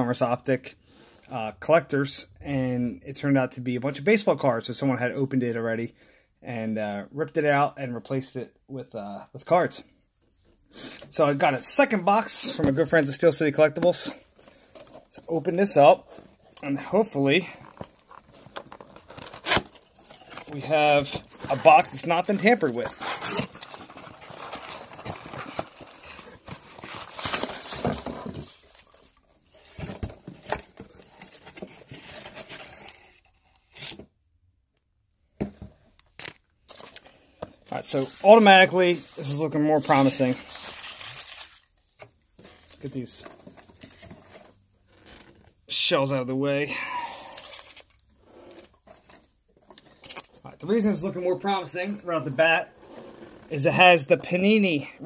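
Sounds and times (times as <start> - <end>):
cardboard tearing and rustling: 14.5 - 34.0, 37.7 - 45.4, 47.1 - 49.2.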